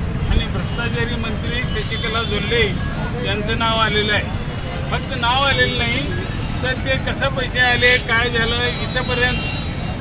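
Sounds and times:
low rumble of street traffic: 0:00.0 - 0:10.0
man speaking: 0:05.0 - 0:09.4.

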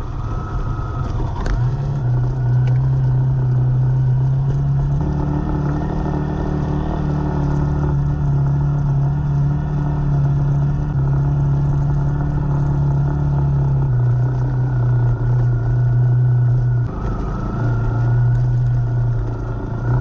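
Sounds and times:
motorcycle engine running: 0:00.0 - 0:20.0
road and wind noise: 0:00.0 - 0:20.0.

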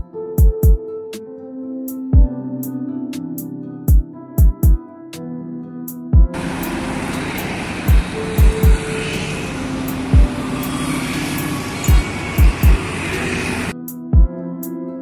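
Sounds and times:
background music with kick drum: 0:00.0 - 0:00.8, 0:01.9 - 0:02.3, 0:03.2 - 0:04.8, 0:05.9 - 0:06.4, 0:07.9 - 0:08.8, 0:10.1 - 0:10.4, 0:11.8 - 0:12.8, 0:13.8 - 0:14.7
road traffic passing: 0:06.4 - 0:13.8.

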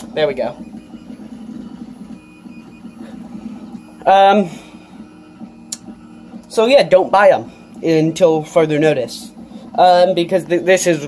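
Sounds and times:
cooling fans whirring: 0:00.0 - 0:11.0.

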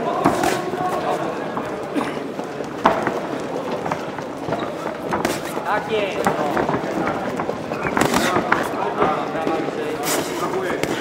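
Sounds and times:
people shouting: 0:00.0 - 0:02.0
boxing gloves slapping: 0:00.2 - 0:01.2, 0:04.5 - 0:11.0.

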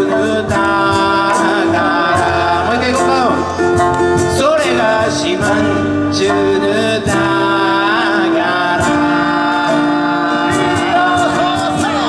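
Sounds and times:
man singing: 0:00.0 - 0:12.0
plucked strings: 0:00.0 - 0:12.0
strummed acoustic guitar: 0:00.0 - 0:12.0.

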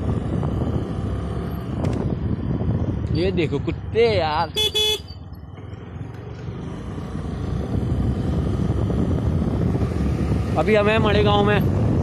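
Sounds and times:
motorcycle engine rumble: 0:00.0 - 0:12.0
road and wind noise: 0:00.0 - 0:12.0.

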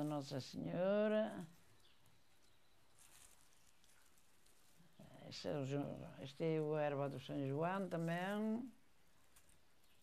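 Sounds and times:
dried herbs rustling: 0:00.0 - 0:10.0.

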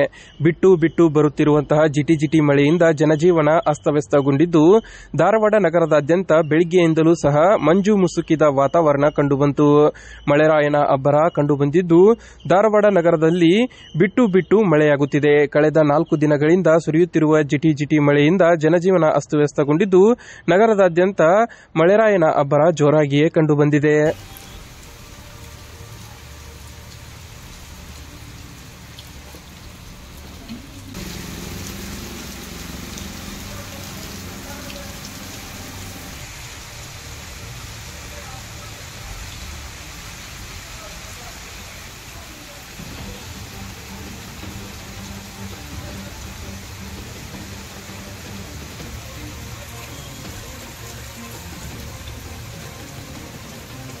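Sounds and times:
soft background music: 0:24.0 - 0:36.3, 0:42.8 - 0:54.0
light rain on leaves: 0:24.1 - 0:54.0.

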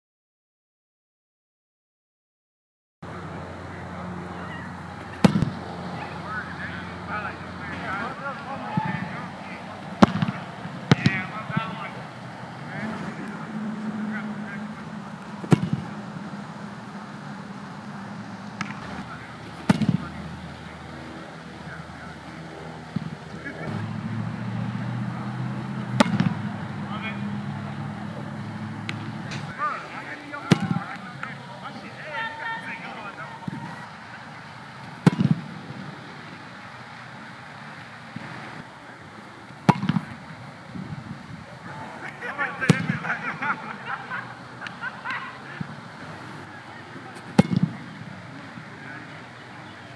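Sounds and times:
boot thumping football: 0:05.2 - 0:05.6, 0:15.4 - 0:15.9, 0:35.0 - 0:35.5, 0:39.7 - 0:40.2, 0:47.4 - 0:47.8
low hum: 0:09.2 - 0:29.6.

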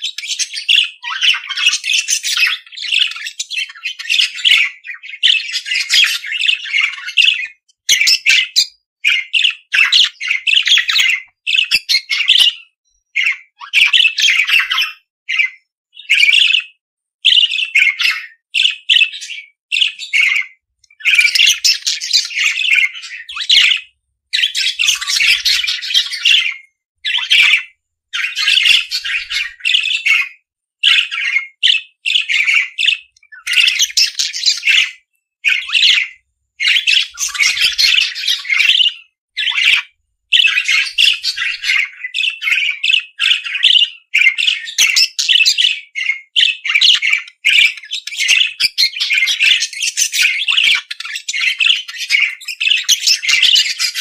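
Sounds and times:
budgerigars chattering and warbling: 0:00.0 - 0:54.0.

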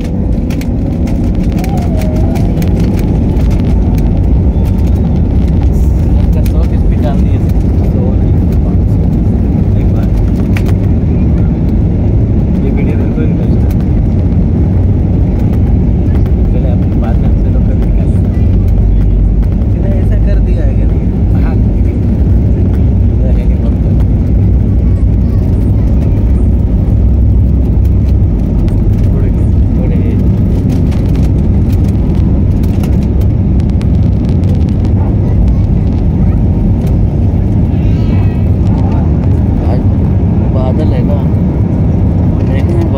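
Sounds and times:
jet engines roaring in cabin: 0:00.0 - 0:42.9.

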